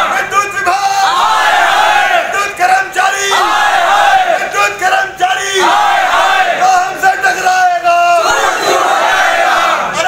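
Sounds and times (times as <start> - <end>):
crowd of men shouting slogans: 1.0 - 2.4, 3.0 - 4.7, 5.4 - 7.6, 8.2 - 10.0.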